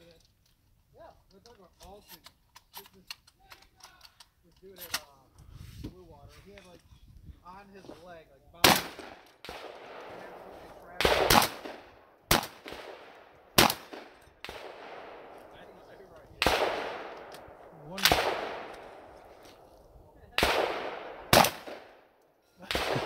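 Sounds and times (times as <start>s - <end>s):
gunshots with echoing tail: 8.6s - 19.7s, 20.3s - 23.0s.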